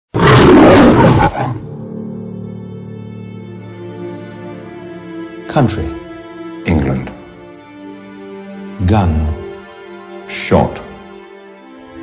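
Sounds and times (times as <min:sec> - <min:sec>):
lion roaring: 0:00.2 - 0:01.8.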